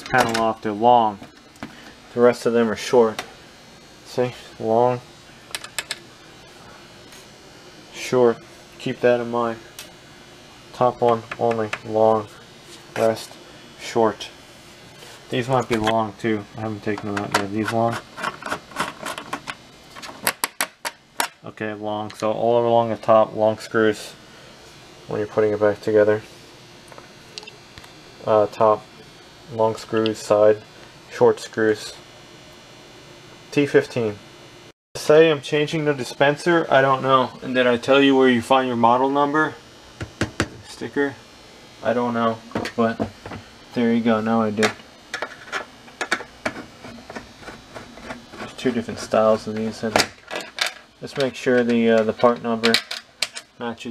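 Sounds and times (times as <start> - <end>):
screwdriver clicking and scraping: 17.2 - 20.4.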